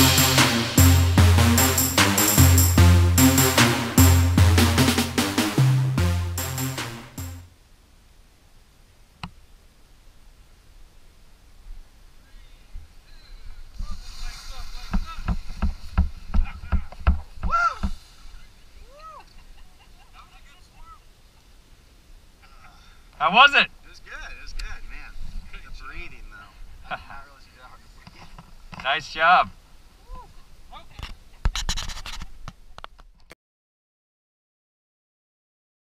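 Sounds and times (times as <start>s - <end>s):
bodies thumping and skidding on grass: 13.8s - 18.0s
person shouting: 17.4s - 17.9s.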